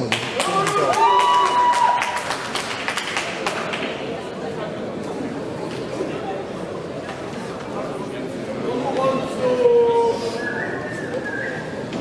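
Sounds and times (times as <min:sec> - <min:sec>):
audience clapping: 0:00.0 - 0:04.0.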